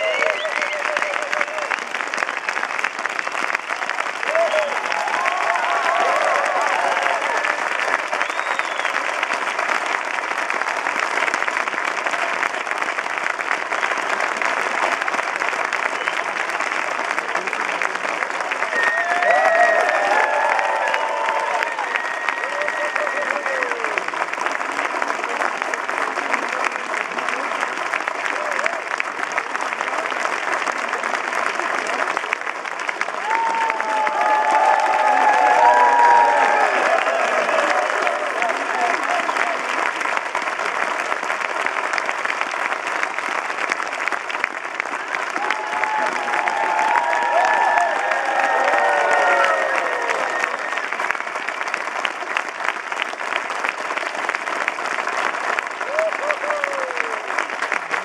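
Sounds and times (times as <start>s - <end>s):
audience applauding: 0.0s - 58.0s.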